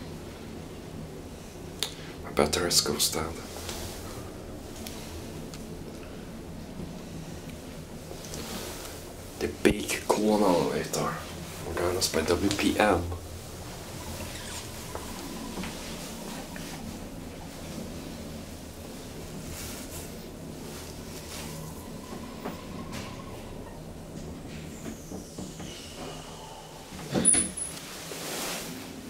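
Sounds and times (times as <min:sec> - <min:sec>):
elevator car hum: 0:00.0 - 0:29.0
faint squeaks: 0:10.5 - 0:18.2, 0:21.0 - 0:27.8.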